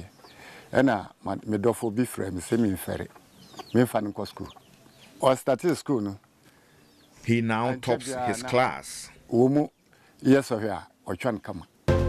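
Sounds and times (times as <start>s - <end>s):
chickens clucking: 0.0s - 1.4s, 2.1s - 8.8s
man speaking: 0.7s - 4.6s, 5.2s - 6.2s, 7.2s - 11.7s.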